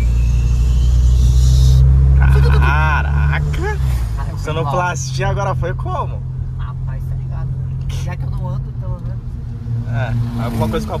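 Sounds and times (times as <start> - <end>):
turbo whistle: 0.0 - 1.8
car engine accelerating: 0.0 - 11.0.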